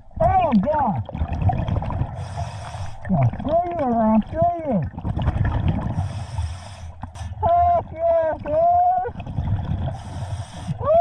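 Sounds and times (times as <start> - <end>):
bubbling exhaled air underwater: 0.0 - 10.8
regulator air hiss: 2.2 - 3.0, 6.0 - 7.4, 10.0 - 10.8.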